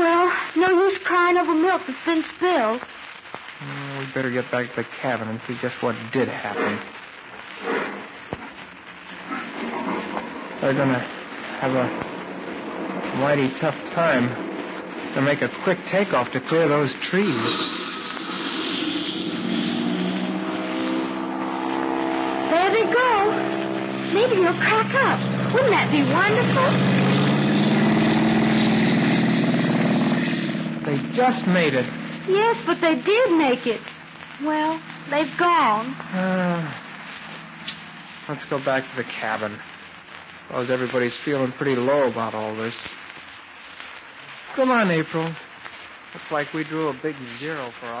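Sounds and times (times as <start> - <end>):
voices: 0.0 - 2.8, 3.6 - 7.0, 9.2 - 19.7, 20.3 - 29.1, 30.4 - 39.8, 40.5 - 43.0, 46.2 - 48.0
recording hiss and surface noise: 2.8 - 48.0
propeller airplane engine drone: 18.0 - 32.3.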